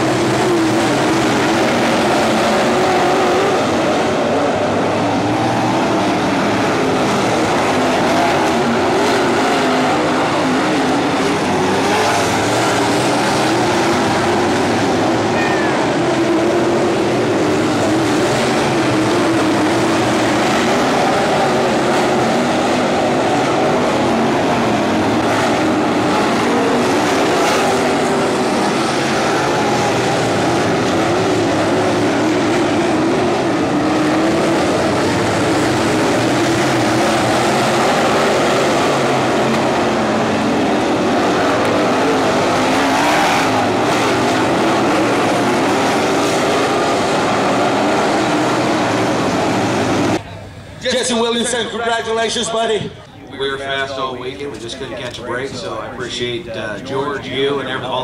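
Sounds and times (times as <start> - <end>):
race car engines passing: 0.0 - 58.0.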